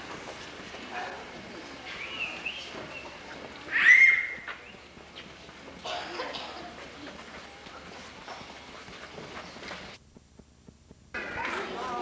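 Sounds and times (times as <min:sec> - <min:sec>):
child squealing: 0:03.7 - 0:04.4
high-pitched child calls: 0:03.7 - 0:04.4.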